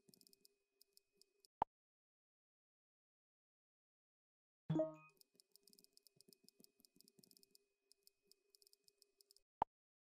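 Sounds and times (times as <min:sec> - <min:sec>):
on-screen keyboard clicking: 0:00.0 - 0:01.6, 0:04.9 - 0:09.5.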